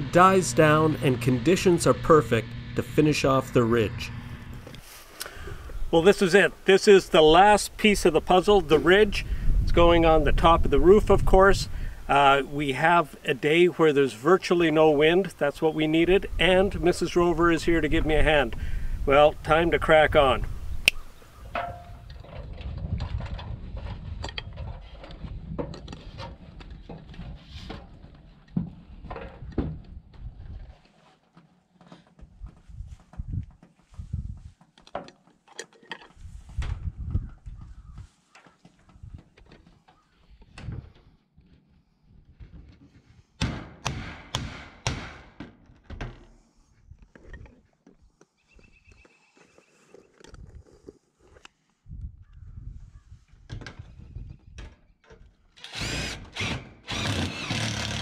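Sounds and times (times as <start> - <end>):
low rumble: 0.0 - 4.8.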